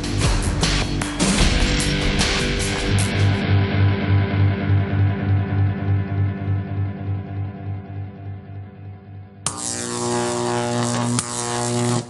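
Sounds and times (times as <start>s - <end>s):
sustained droning chord: 2.6s - 12.0s.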